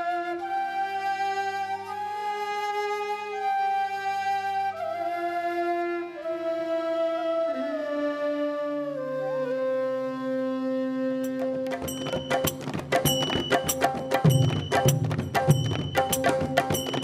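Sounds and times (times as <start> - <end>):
bamboo flutes playing: 0.0 - 12.5.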